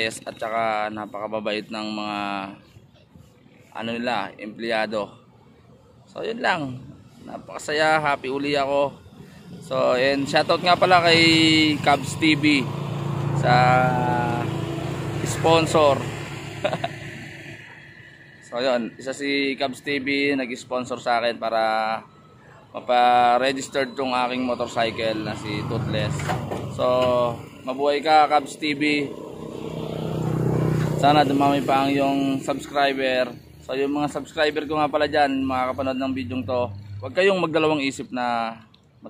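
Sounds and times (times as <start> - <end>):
vehicle engine hum: 0.0 - 39.0.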